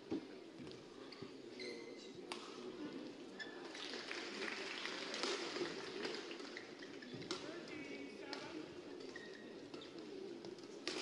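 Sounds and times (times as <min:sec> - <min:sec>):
crowd noise: 0:00.0 - 0:11.0
shoes squeaking on court: 0:09.0 - 0:10.2.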